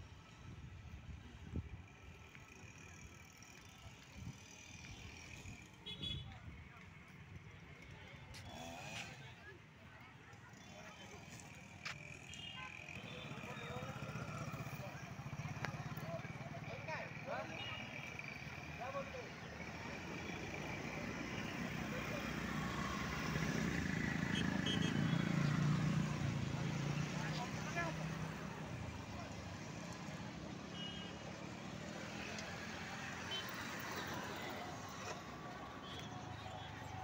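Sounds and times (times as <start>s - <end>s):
roadside traffic noise: 0.0s - 37.0s.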